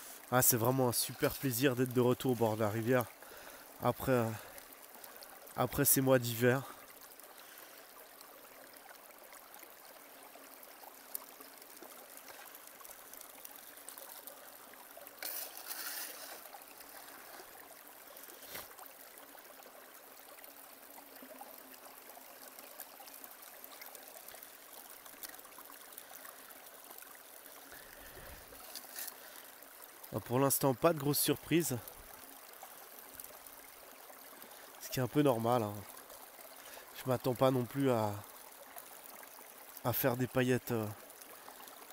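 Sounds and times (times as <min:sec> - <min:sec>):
water trickling: 0:00.0 - 0:41.9.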